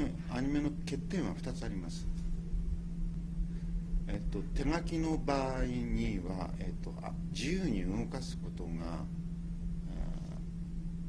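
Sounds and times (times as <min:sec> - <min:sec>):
low room hum and rumble: 0:00.0 - 0:11.0.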